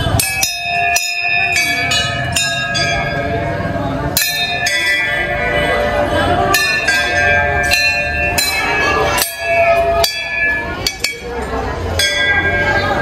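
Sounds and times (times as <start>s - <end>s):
brass bells ringing: 0.0s - 13.0s.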